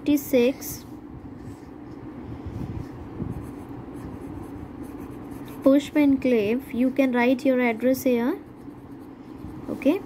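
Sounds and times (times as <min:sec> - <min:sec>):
low steady hum: 0:00.0 - 0:10.0
pen scratching on paper: 0:03.3 - 0:06.0, 0:08.4 - 0:10.0.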